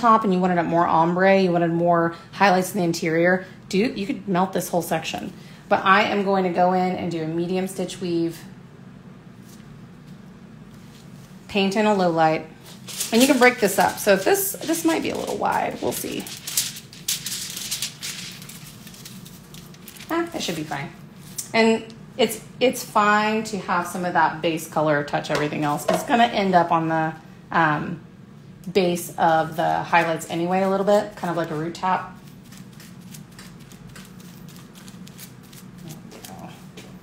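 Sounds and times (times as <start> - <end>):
low room hum: 0.0 - 37.0
rustling of hair foil: 12.6 - 21.4, 29.4 - 36.8.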